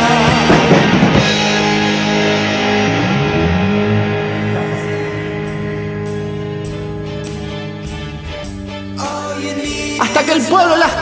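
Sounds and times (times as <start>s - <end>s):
electric guitar chord ringing: 0.0s - 9.0s
bass notes: 0.0s - 11.0s
drums: 0.0s - 11.0s.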